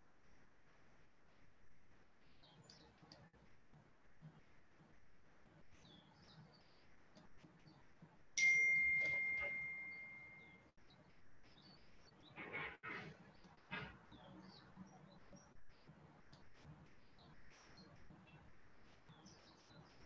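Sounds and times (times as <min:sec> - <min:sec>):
bell-like ding: 0:08.4 - 0:10.6.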